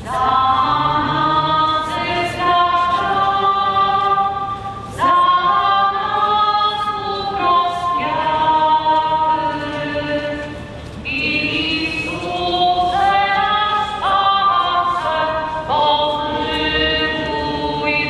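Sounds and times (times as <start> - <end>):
group singing a hymn unaccompanied: 0.0 - 18.0.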